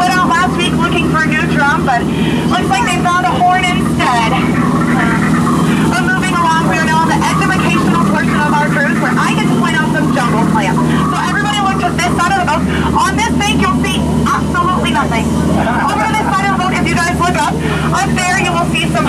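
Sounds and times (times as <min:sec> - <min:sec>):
boat engine hum: 0:00.0 - 0:19.0
voices talking: 0:00.0 - 0:19.0.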